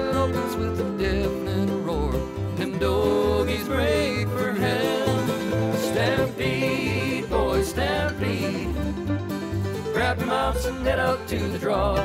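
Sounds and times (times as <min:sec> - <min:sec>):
country song with band: 0:00.0 - 0:12.0.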